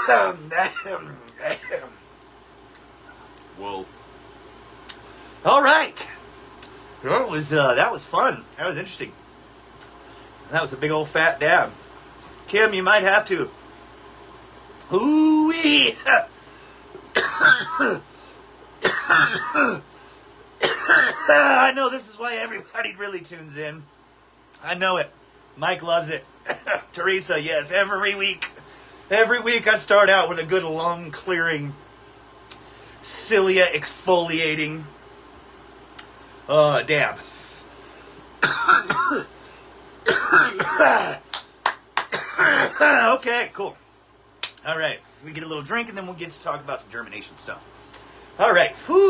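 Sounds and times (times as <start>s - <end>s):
man coughing: 0.0s - 2.0s, 17.1s - 18.1s, 18.8s - 19.9s, 20.6s - 21.6s, 26.4s - 26.9s, 38.4s - 39.4s, 40.0s - 41.3s, 42.1s - 43.2s.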